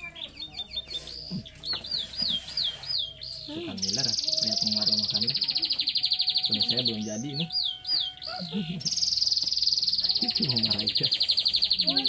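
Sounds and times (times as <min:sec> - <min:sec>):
buzzy bird trill: 0:00.0 - 0:12.0
bird whistled notes: 0:00.2 - 0:12.0.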